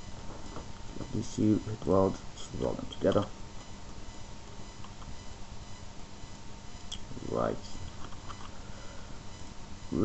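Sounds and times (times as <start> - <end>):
faint hum: 0.0 - 10.0
microphone hiss: 0.0 - 10.0.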